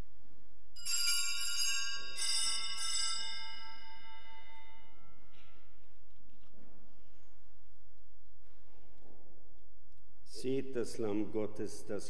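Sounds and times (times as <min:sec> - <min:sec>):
altar bells ringing: 0:00.8 - 0:05.6.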